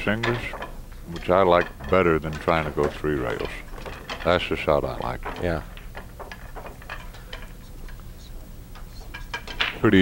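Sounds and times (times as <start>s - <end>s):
cue ball rolling on table: 8.9s - 10.0s.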